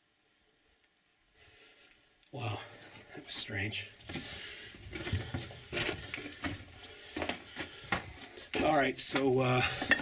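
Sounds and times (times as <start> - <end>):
footsteps crunching on rock: 3.0 - 10.0.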